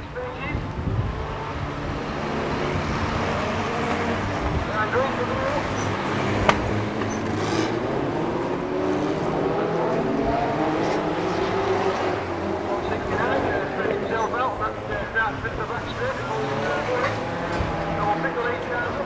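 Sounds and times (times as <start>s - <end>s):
stock car engines running: 0.0s - 19.0s.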